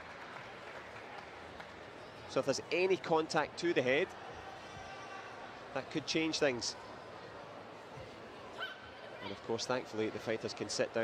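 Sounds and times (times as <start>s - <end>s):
competition hall background noise: 0.0s - 11.0s.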